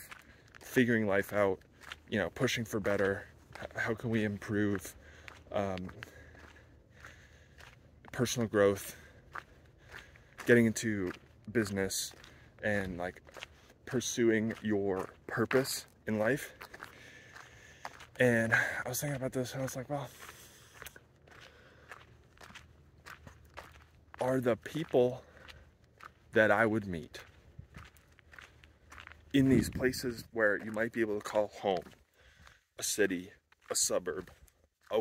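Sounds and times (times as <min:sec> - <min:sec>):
faint footsteps walking: 0:00.0 - 0:35.0.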